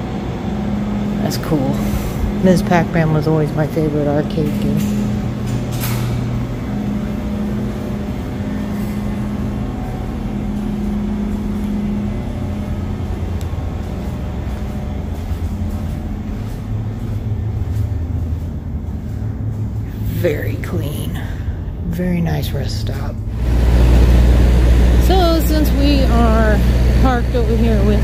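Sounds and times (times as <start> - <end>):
ventilation system hum: 0.0 - 28.0.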